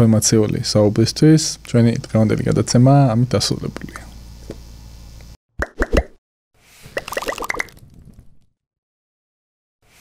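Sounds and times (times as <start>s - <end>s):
pitched plops: 5.6s - 6.2s, 6.9s - 7.8s.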